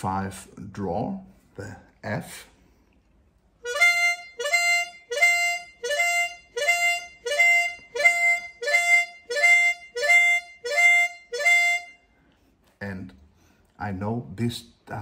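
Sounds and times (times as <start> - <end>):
harmonica sliding glissando: 3.6 - 12.1.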